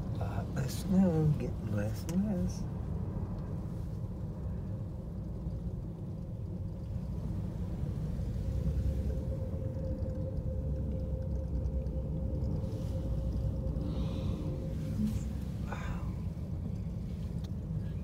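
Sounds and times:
faint steady hum: 0:00.0 - 0:18.0
gondola cabin rumble: 0:00.0 - 0:18.0.

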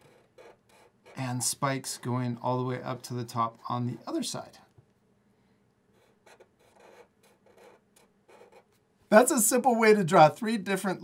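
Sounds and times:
marker scratching on paper: 0:00.0 - 0:01.4, 0:05.9 - 0:08.8.

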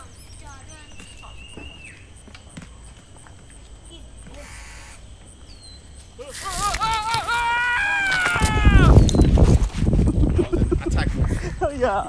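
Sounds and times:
rustling: 0:05.0 - 0:11.3.

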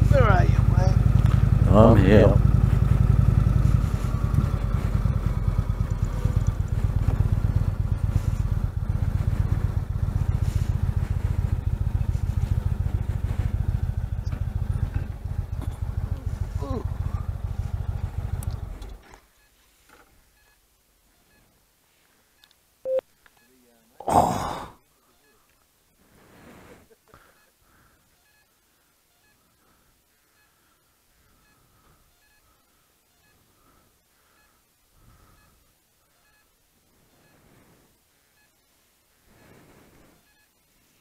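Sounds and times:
motorcycle engine pulsing rumble: 0:00.0 - 0:19.1.

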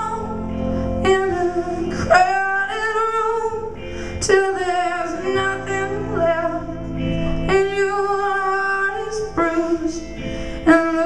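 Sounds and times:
woman singing a long note: 0:00.0 - 0:06.9, 0:07.5 - 0:11.0
electric guitar: 0:00.0 - 0:11.0.

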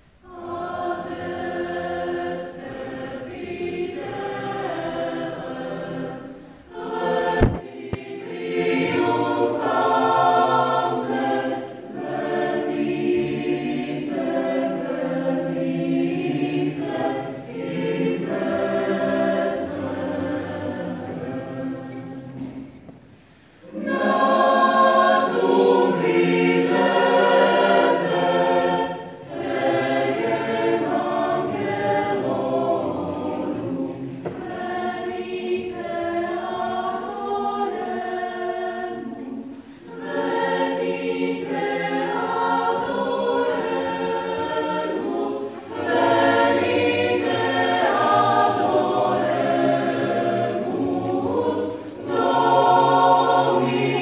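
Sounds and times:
mixed choir singing in parts: 0:00.0 - 0:54.0.

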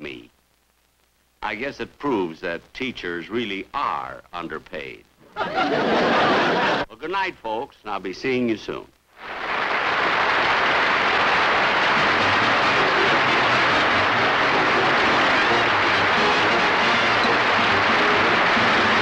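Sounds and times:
audience applauding: 0:09.2 - 0:19.0
faint band music: 0:11.6 - 0:19.0.

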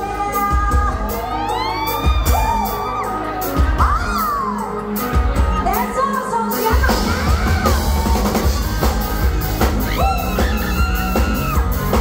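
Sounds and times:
heavy drum beat: 0:00.0 - 0:12.0
live band playing pop song: 0:00.0 - 0:12.0.

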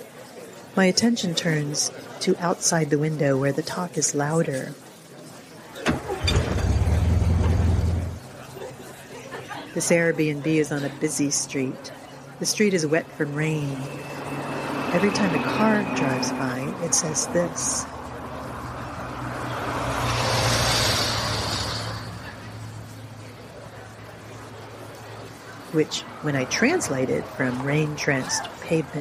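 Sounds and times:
vehicle engine rumble: 0:05.9 - 0:08.6, 0:12.9 - 0:25.6
tyres hissing on wet road: 0:18.5 - 0:22.8.

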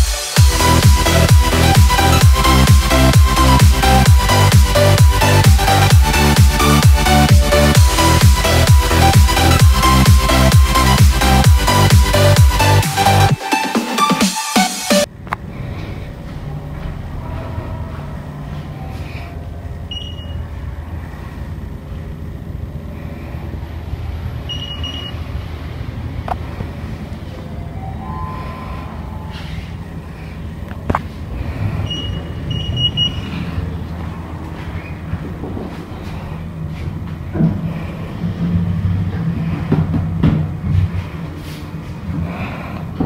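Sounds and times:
elevator hum and rumble: 0:15.1 - 0:43.0
short high electronic beeps: 0:19.9 - 0:20.4, 0:24.5 - 0:25.2, 0:31.8 - 0:33.3.

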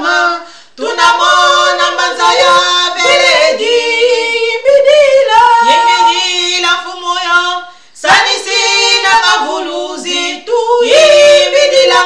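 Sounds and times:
two women singing a worship song: 0:00.0 - 0:12.0.

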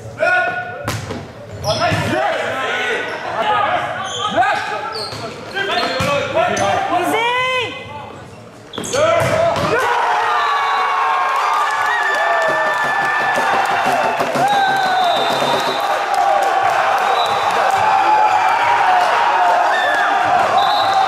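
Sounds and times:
crowd cheering and shouting: 0:09.6 - 0:21.0
players shouting calls: 0:12.1 - 0:21.0.

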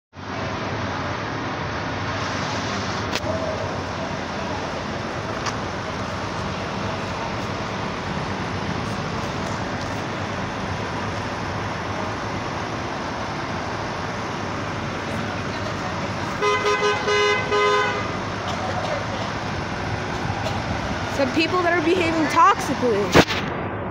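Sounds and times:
passing street traffic: 0:00.1 - 0:23.9
coach engine idling: 0:02.4 - 0:23.0.

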